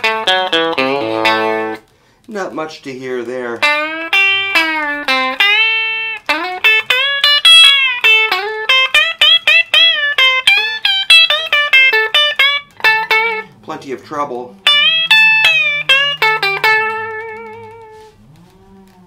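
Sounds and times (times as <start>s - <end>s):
electric guitar bent notes: 0.0s - 2.3s, 3.1s - 19.0s.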